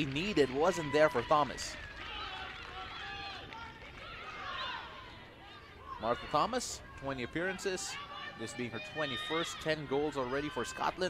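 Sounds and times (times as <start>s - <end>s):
distant players shouting: 0.4s - 11.0s.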